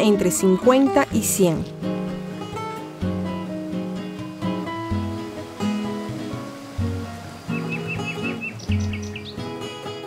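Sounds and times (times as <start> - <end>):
acoustic guitar music: 0.0 - 10.0
birds chirping: 2.0 - 10.0.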